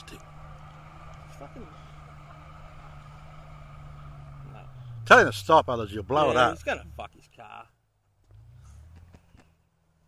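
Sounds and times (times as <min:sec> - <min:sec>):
distant car engine at high revs: 0:00.0 - 0:10.0.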